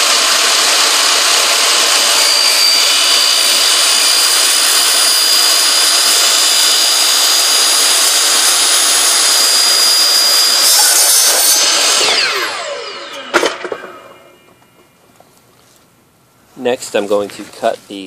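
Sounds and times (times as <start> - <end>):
miter saw cutting plastic gutter: 0.0 - 14.6.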